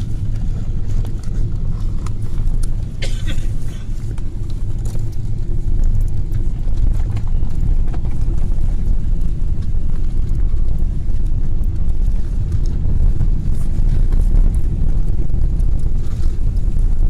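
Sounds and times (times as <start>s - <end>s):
airliner cabin low rumble: 0.0s - 17.0s.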